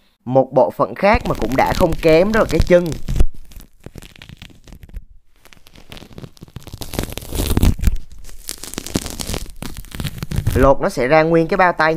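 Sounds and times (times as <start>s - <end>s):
crinkly tearing and crackling: 1.1s - 10.9s.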